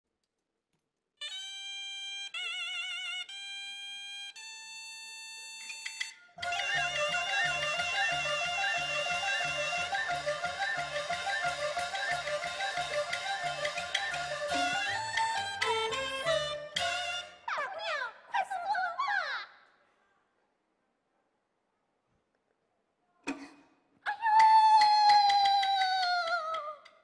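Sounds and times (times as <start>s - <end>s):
opera ensemble with percussion beat: 5.8s - 17.5s, 24.1s - 27.0s
solo melody instrument long notes: 6.4s - 17.5s.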